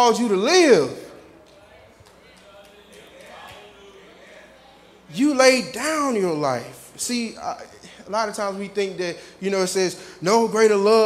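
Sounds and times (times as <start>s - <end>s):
faint indistinct voices: 0.0s - 9.0s.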